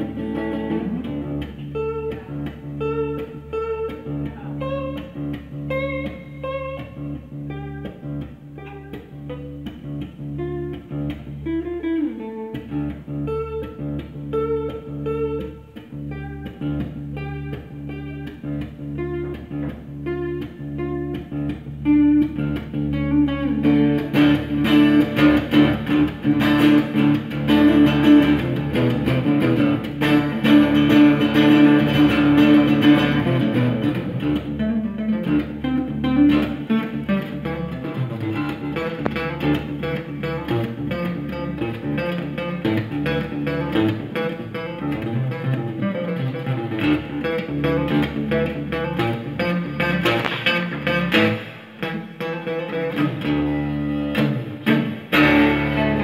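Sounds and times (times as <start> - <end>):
acoustic guitar picking: 0.0 - 56.0.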